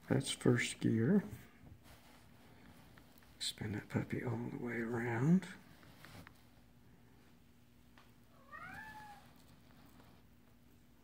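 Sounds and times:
faint steady hum: 0.0s - 11.0s
cat meowing: 8.3s - 9.4s.

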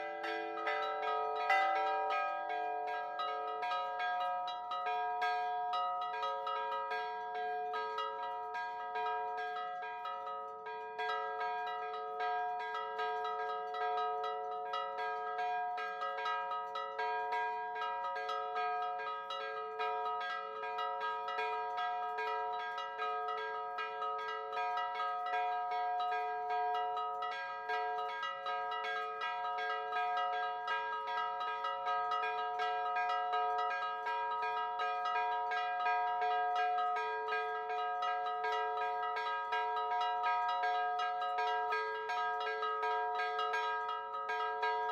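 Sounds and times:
church bells ringing: 0.0s - 44.9s.

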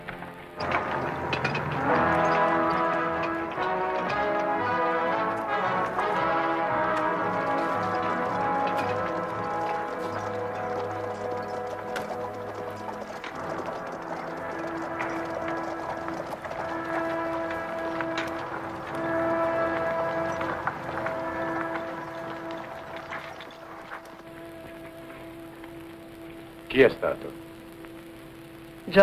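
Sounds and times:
orchestral film music: 0.0s - 28.3s
horses' hooves clip-clopping: 0.0s - 29.0s.

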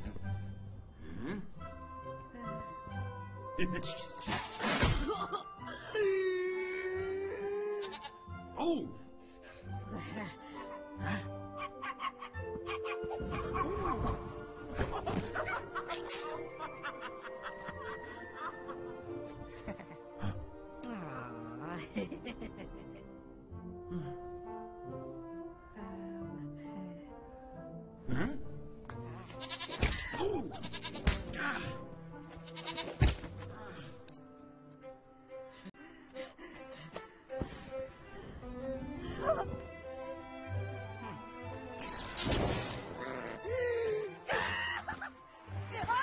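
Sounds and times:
orchestral score with held notes: 33.8s - 46.0s.

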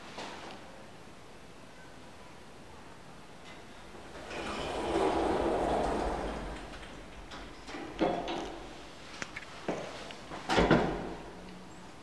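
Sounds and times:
lift doors sliding shut: 3.3s - 11.4s.

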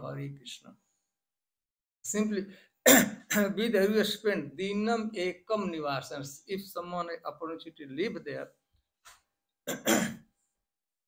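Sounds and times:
man coughing: 2.9s - 3.5s, 9.7s - 10.2s.

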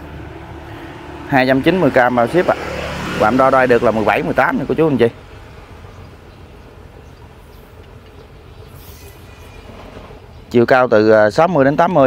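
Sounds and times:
faint high hiss: 7.2s - 10.2s.

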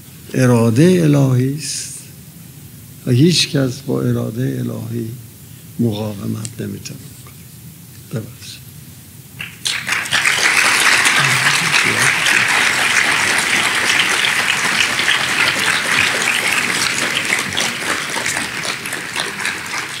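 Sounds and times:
audience applauding: 9.4s - 20.0s.

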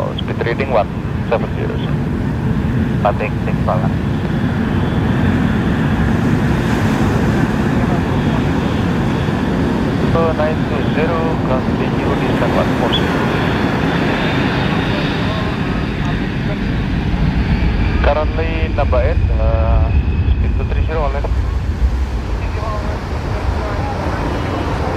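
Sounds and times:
jet engines rumbling with whine: 0.0s - 24.9s
deep low rumble: 13.2s - 24.9s.

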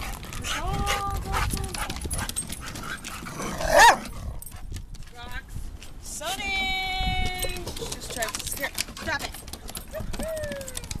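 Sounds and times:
footsteps on wooden boards: 0.0s - 6.0s, 7.1s - 11.0s
dog barking: 3.6s - 4.0s.

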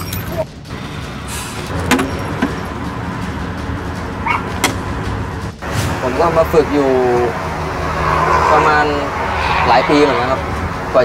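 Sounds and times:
low rumble: 5.0s - 11.0s.

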